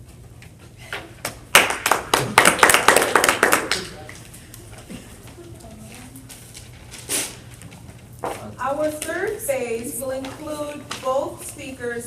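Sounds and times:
audience clapping: 1.5s - 4.2s.

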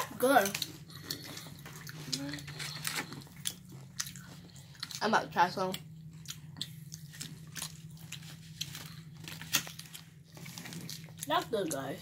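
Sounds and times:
steady low hum: 0.0s - 12.0s
biting and chewing crunches: 0.4s - 5.2s, 5.8s - 11.8s.

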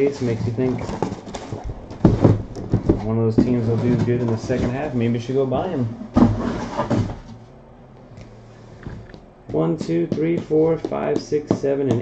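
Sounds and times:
boxes scraping on table: 0.0s - 5.0s, 5.8s - 7.4s.

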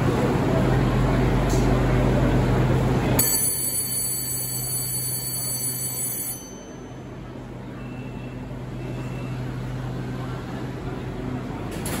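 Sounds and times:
train humming at platform: 0.0s - 12.0s.

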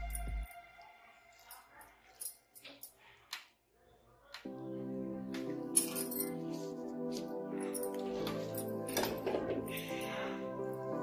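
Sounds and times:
background music: 0.0s - 2.8s, 4.3s - 11.0s.

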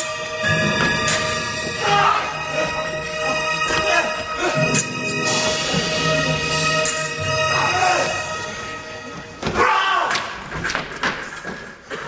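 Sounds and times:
person shouting: 1.8s - 2.4s
bodies and feet thudding on stage: 9.2s - 12.0s.

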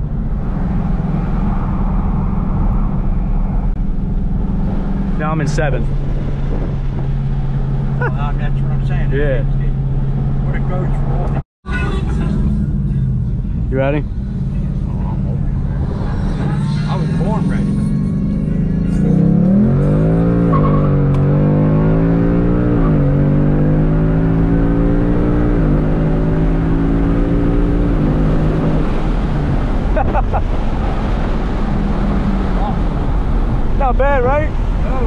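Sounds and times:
car engine revving: 0.0s - 35.0s.

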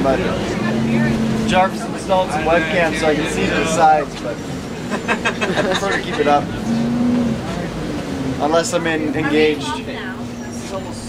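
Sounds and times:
bus engine rumbling: 0.0s - 11.0s.

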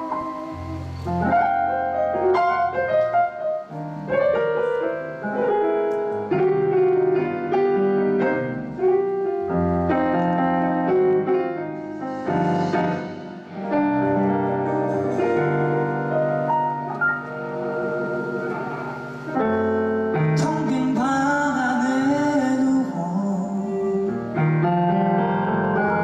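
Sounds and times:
solo piano: 0.0s - 26.0s.

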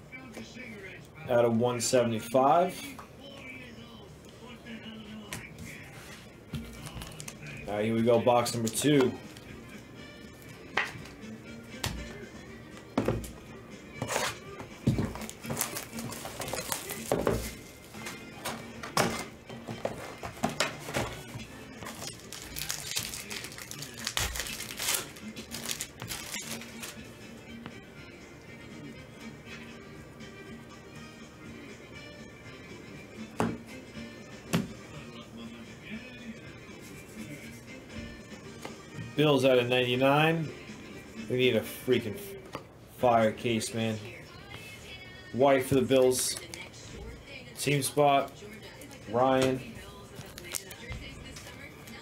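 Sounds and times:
background music: 0.0s - 52.0s
plastic wrapping tearing: 6.6s - 7.4s, 15.2s - 18.0s, 21.8s - 27.0s, 50.2s - 50.8s
foil packs crinkling: 15.2s - 18.2s, 21.8s - 27.0s.

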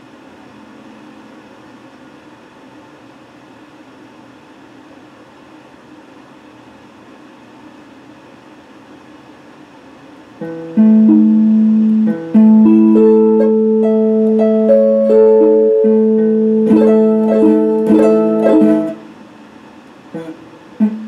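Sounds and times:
electric guitar picked chords: 10.4s - 19.2s, 20.2s - 21.0s.

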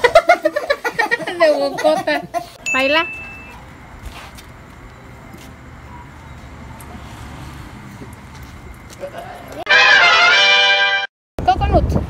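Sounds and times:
outdoor background noise: 0.0s - 12.0s.

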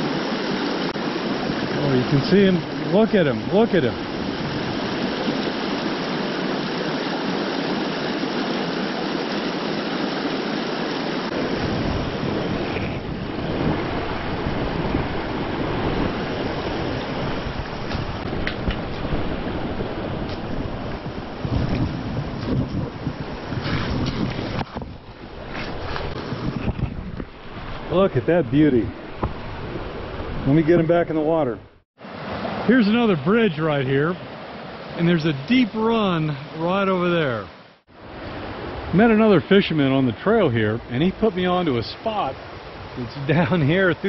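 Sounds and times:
wind rumble on microphone: 0.0s - 9.7s, 10.3s - 32.6s
creek rushing over rocks: 0.0s - 31.4s, 32.0s - 44.0s.

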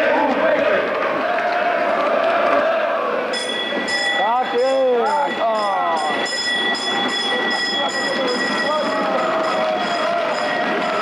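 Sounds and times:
people shouting and cheering: 0.0s - 11.0s
tram running on rails: 0.0s - 11.0s.

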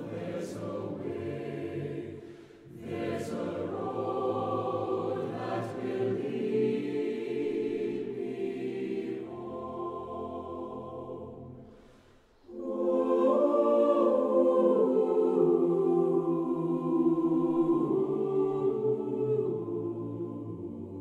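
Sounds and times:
choir singing slow piece: 0.0s - 21.0s.

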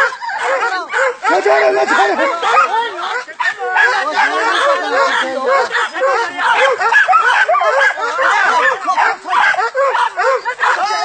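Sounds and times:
dogs barking and yelping: 0.0s - 11.0s
men's voices: 0.0s - 11.0s.

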